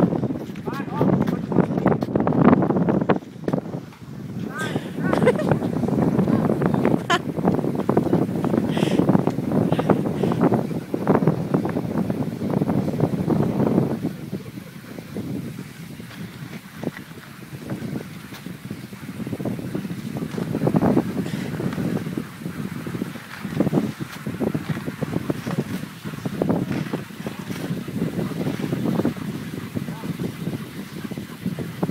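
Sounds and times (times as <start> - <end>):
wind buffeting microphone: 0.0 - 31.9.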